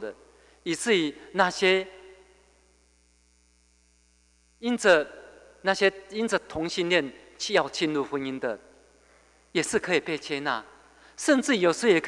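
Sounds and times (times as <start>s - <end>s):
faint electrical mains hum: 0.0s - 12.0s
person speaking: 4.6s - 8.6s, 9.5s - 12.0s.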